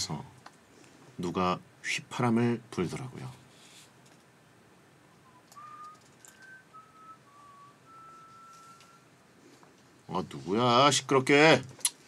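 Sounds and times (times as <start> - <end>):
person whistling a slow tune: 5.1 - 9.1.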